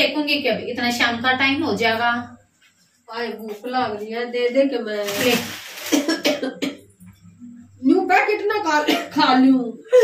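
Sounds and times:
woman coughing: 0:05.8 - 0:06.8, 0:08.8 - 0:09.3.

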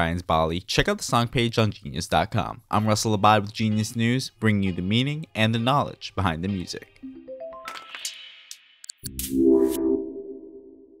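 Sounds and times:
electronic music sting: 0:09.1 - 0:11.0.

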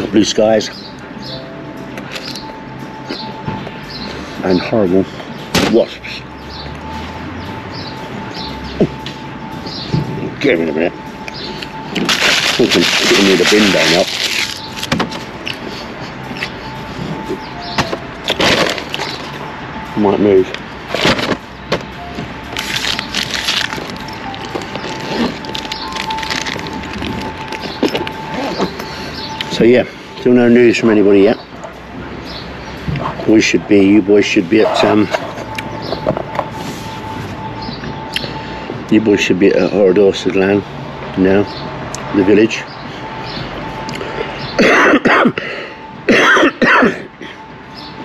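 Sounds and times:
paper bag crinkling and rustling: 0:12.0 - 0:14.9, 0:18.3 - 0:19.3, 0:22.5 - 0:28.8
man coughing: 0:44.6 - 0:47.4.

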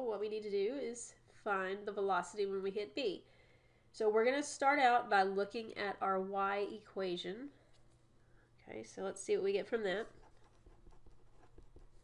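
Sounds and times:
pen scratching on paper: 0:10.0 - 0:12.0.

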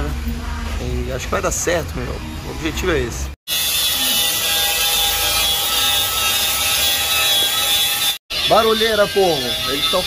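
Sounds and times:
angle grinder grinding steel: 0:03.5 - 0:10.0.

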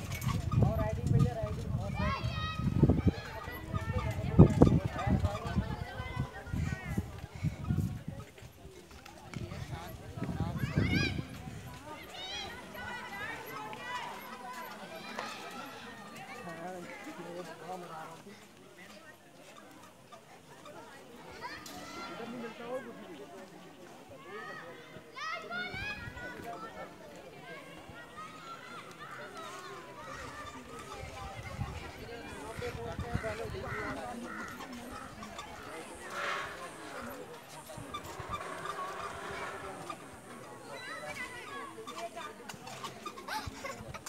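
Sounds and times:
children playing: 0:00.0 - 0:44.0
crowd voices: 0:00.0 - 0:44.0
distant people talking and calling: 0:00.0 - 0:44.0.

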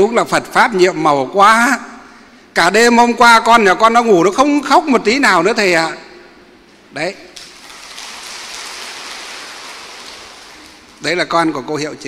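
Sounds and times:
large audience applauding: 0:07.4 - 0:11.0.

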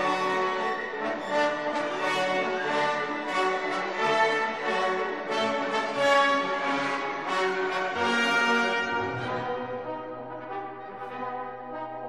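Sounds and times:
orchestral music with french horn: 0:00.0 - 0:12.0.

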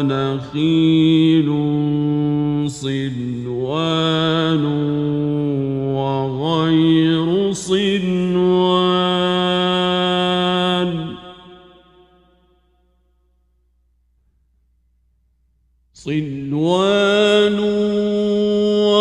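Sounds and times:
man chanting: 0:00.0 - 0:12.1, 0:16.0 - 0:19.0.

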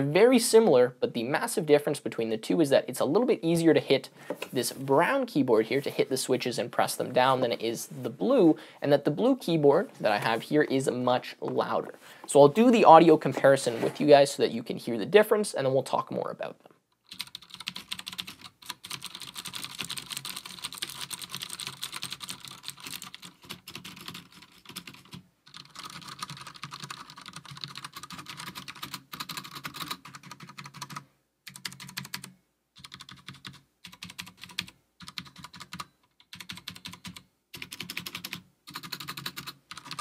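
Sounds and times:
typing on mechanical keyboard: 0:17.0 - 0:40.0.

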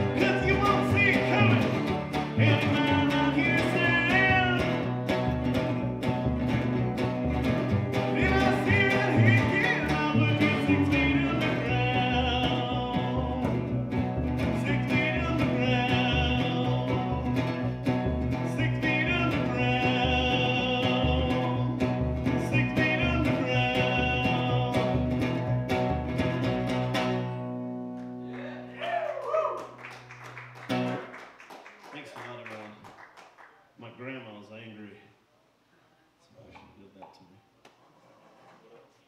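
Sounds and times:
man singing: 0:00.0 - 0:05.0, 0:08.0 - 0:13.7, 0:14.4 - 0:17.6, 0:18.4 - 0:25.1
plucked upright bass: 0:00.0 - 0:27.7
acoustic guitar: 0:00.0 - 0:28.8, 0:29.6 - 0:31.4.

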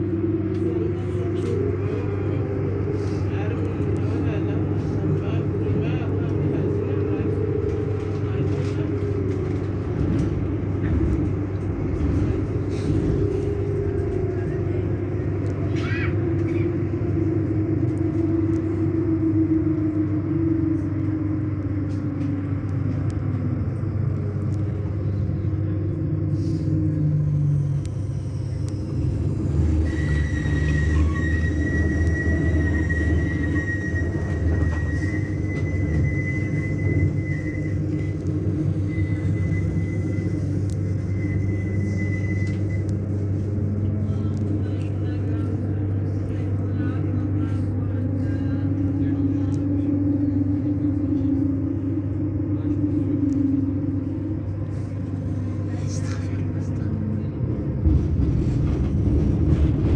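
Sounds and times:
tram electrical hum: 0:00.0 - 0:59.9.

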